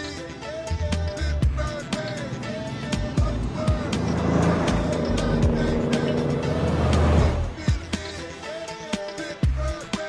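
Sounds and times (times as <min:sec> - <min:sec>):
sports car driving past: 0:01.4 - 0:07.7
music with steady beat: 0:07.5 - 0:10.0.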